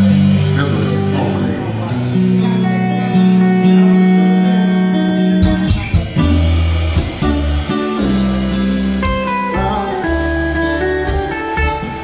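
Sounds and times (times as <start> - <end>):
bass guitar: 0.0 - 12.0
drum kit: 0.0 - 12.0
electric guitar: 0.0 - 12.0
keyboard chords: 0.0 - 12.0.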